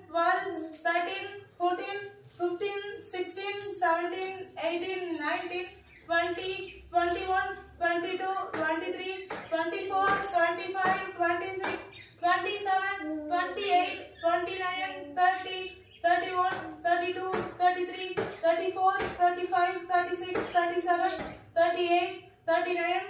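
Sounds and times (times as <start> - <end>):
woman counting aloud: 0.0 - 23.0.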